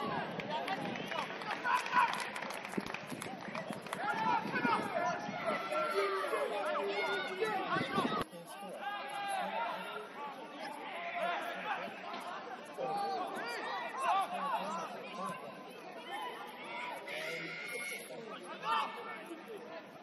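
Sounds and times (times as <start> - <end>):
distant shouts and chatter: 0.0 - 20.0.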